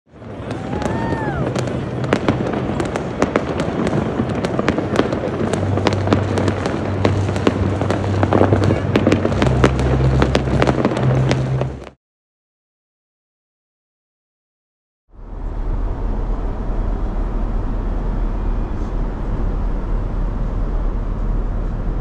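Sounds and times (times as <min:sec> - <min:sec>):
fireworks bangs and crackles: 0:00.1 - 0:12.0.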